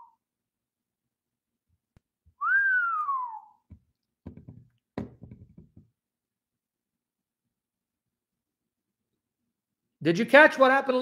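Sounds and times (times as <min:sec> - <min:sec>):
man whistling gliding note: 0:02.4 - 0:03.6.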